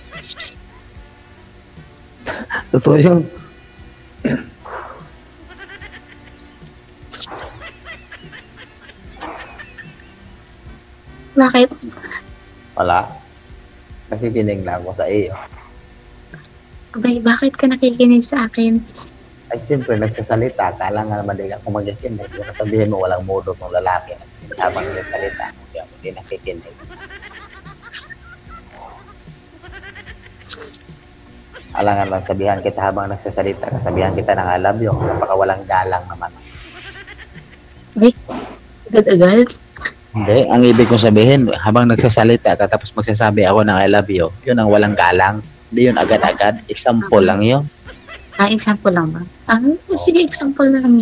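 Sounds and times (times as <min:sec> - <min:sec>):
person laughing: 0:02.2 - 0:02.8, 0:04.2 - 0:06.4, 0:07.2 - 0:10.2, 0:11.8 - 0:12.2, 0:18.9 - 0:20.2, 0:22.2 - 0:23.0, 0:24.5 - 0:30.9, 0:31.5 - 0:32.4, 0:36.6 - 0:37.9, 0:45.8 - 0:48.6
quick giggling: 0:07.1 - 0:10.2, 0:26.6 - 0:30.9.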